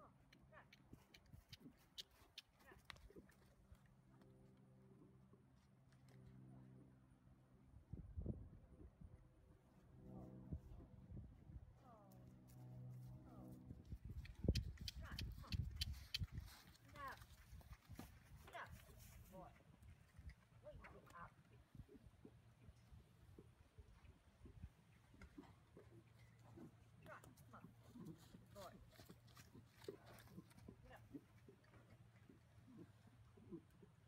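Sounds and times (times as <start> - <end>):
horse hoofbeats on dirt: 14.1 - 21.3, 24.5 - 34.0.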